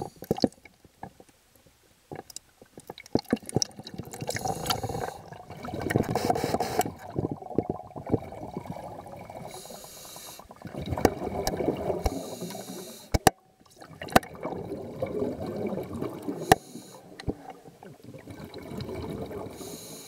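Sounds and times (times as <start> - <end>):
water sloshing and gurgling: 0.0 - 19.8.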